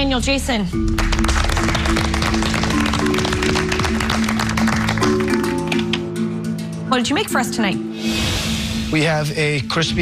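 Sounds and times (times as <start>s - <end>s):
fast busy percussion: 1.0s - 6.2s.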